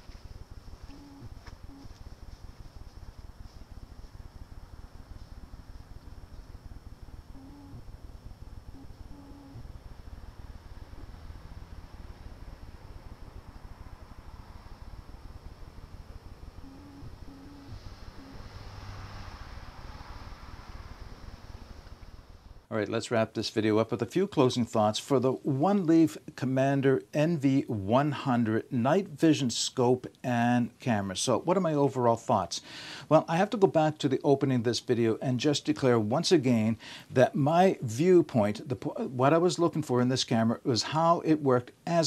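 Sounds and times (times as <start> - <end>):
low rumble: 0.0 - 22.7
steady high-pitched whine: 0.0 - 22.7.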